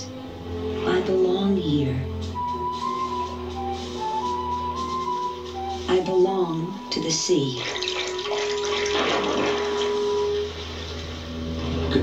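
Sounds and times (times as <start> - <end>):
held music note: 0.0 - 12.0
cartoon water splashing: 7.4 - 10.7.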